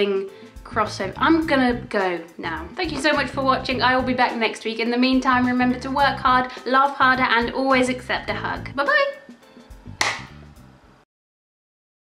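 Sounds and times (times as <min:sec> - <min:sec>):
funk music: 0:00.6 - 0:04.4, 0:09.6 - 0:10.6
sharp clap-like hit: 0:10.0 - 0:10.4.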